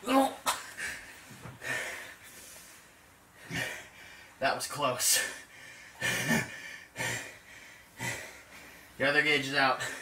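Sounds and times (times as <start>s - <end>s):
man breathing hard: 0.6s - 4.4s, 5.0s - 9.0s, 9.7s - 10.0s.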